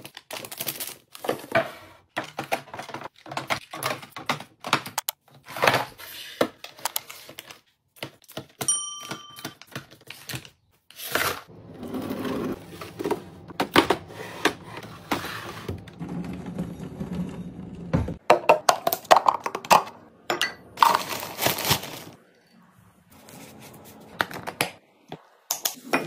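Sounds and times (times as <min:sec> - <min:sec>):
packaging rustling and crinkling: 0:00.0 - 0:01.5, 0:20.8 - 0:22.2
bell-like ding: 0:08.7 - 0:09.5.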